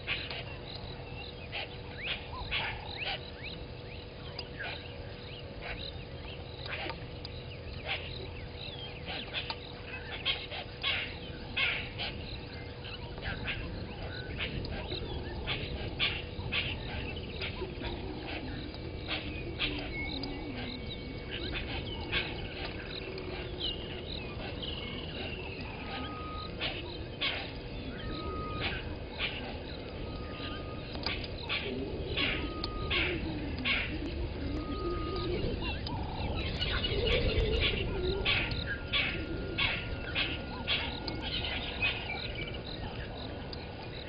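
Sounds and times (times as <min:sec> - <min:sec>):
faint hum: 0:00.0 - 0:44.0
low background rumble: 0:00.0 - 0:44.0.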